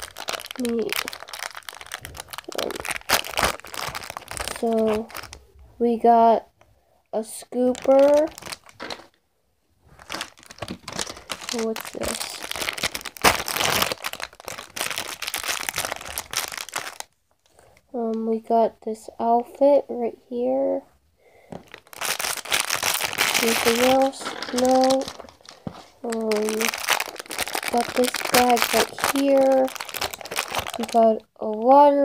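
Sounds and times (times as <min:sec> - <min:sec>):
plastic wrapping crinkling: 0:00.0 - 0:05.5, 0:07.6 - 0:09.2, 0:09.9 - 0:17.8, 0:21.5 - 0:31.9.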